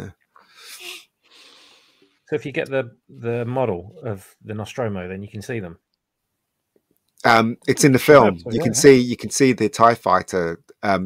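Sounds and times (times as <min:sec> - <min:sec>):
faint steady hiss: 0:00.0 - 0:11.0
breathy nasal exhale: 0:00.5 - 0:02.1.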